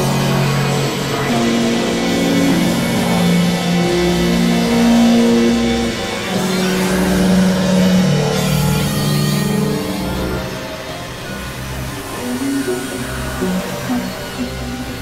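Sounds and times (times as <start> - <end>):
synthesizer drone music: 0.0 - 15.0.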